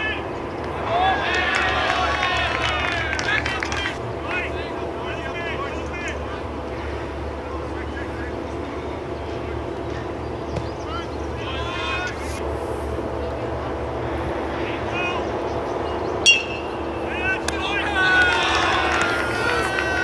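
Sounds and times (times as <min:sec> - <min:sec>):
players calling and chatting: 0:00.0 - 0:20.0
players shouting: 0:00.0 - 0:20.0
steady low hum: 0:00.0 - 0:20.0
metal bat hitting ball: 0:16.2 - 0:16.7.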